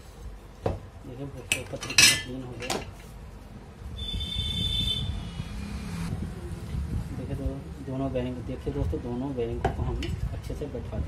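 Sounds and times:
metal parts clinking: 0:01.5 - 0:03.1.

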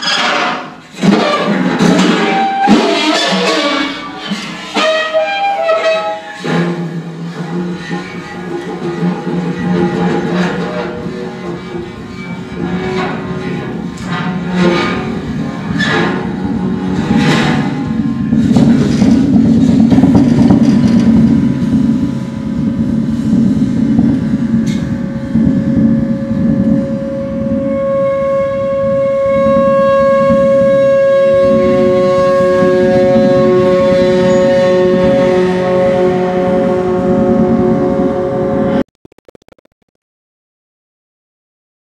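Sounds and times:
low rumble: 0:15.1 - 0:27.8.

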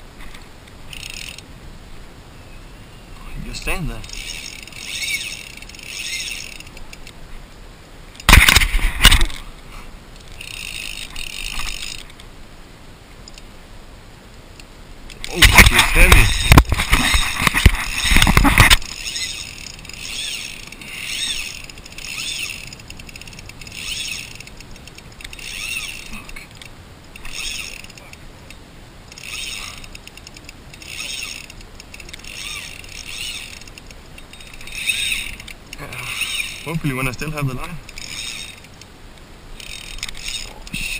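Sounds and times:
fly reel drag ratcheting: 0:00.9 - 0:01.5, 0:04.0 - 0:07.2, 0:10.2 - 0:12.2, 0:15.1 - 0:36.8, 0:37.8 - 0:38.9, 0:39.6 - 0:40.9.

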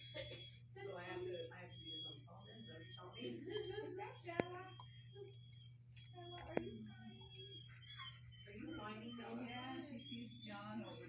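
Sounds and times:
faint distant voices: 0:00.2 - 0:11.0.

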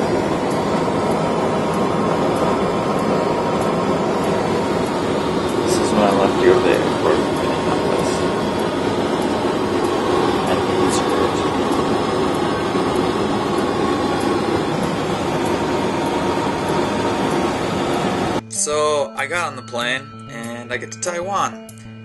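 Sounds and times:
guitar music: 0:00.0 - 0:21.9
vehicle cabin drone: 0:00.0 - 0:22.0
speech: 0:05.7 - 0:08.3, 0:10.5 - 0:11.6, 0:18.5 - 0:21.6.

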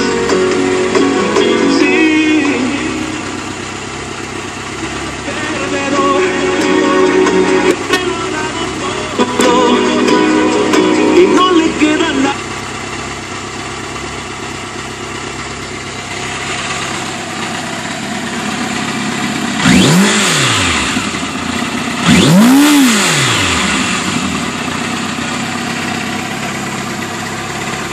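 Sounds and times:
music from motorcycle stereo: 0:00.0 - 0:13.1, 0:16.6 - 0:27.9
motorcycle engine idling: 0:00.0 - 0:27.9
motorcycle engine revving: 0:00.0 - 0:27.9.

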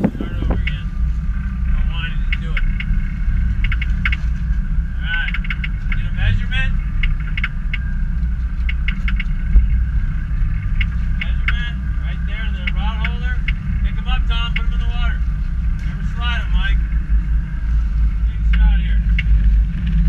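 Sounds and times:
boat engines rumbling: 0:00.0 - 0:20.0.

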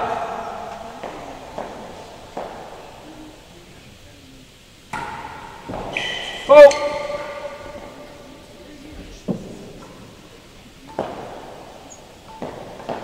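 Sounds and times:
ball knocks echoing indoors: 0:00.0 - 0:13.0.

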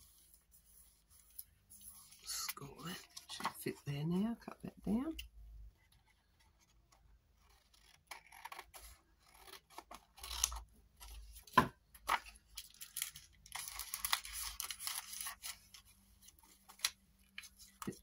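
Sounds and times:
scissors snipping paper: 0:07.4 - 0:10.6
paper rustling: 0:09.3 - 0:18.0.

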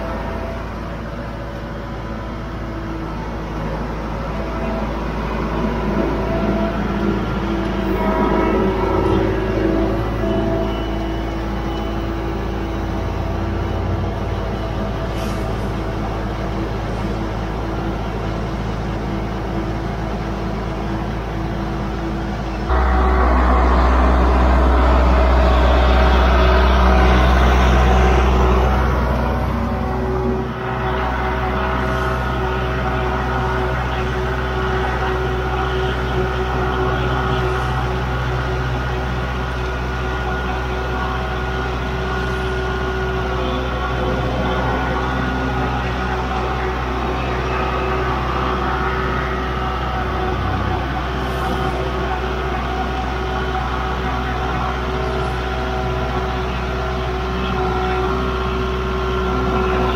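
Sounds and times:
tractor diesel engine revving: 0:00.0 - 0:59.9.

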